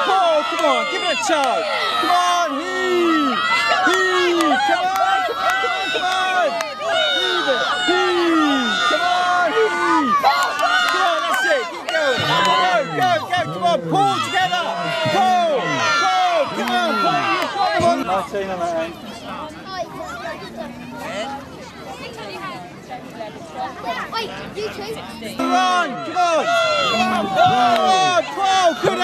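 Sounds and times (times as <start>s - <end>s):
children shouting and cheering: 0.0s - 22.6s, 23.6s - 29.0s
man shouting: 7.3s - 10.2s, 11.1s - 18.0s, 25.4s - 29.0s.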